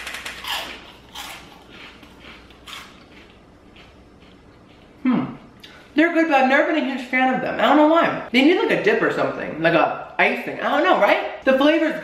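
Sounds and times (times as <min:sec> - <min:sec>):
crunchy chewing: 0:00.4 - 0:05.6.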